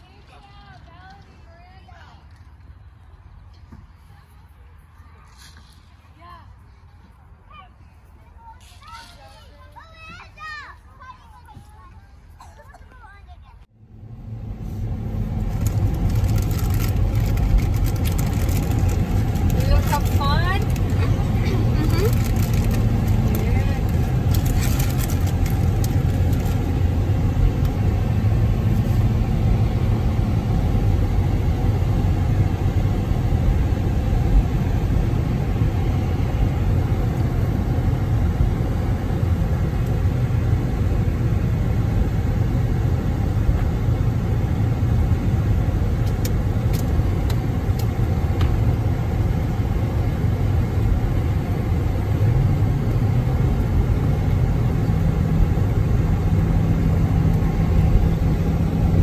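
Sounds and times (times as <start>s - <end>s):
car cabin road rumble: 12.4s - 59.0s.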